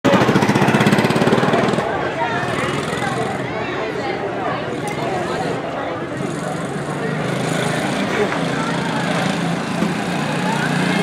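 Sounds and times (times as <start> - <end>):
people talking: 0.1 - 11.0
small race car engine: 0.1 - 11.0.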